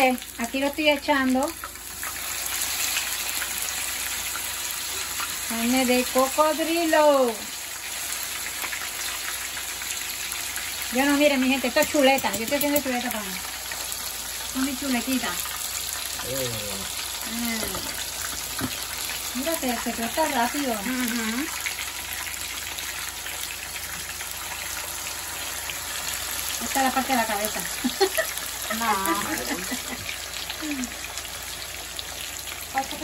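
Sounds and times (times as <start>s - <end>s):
meat frying in hot oil: 0.0s - 33.0s.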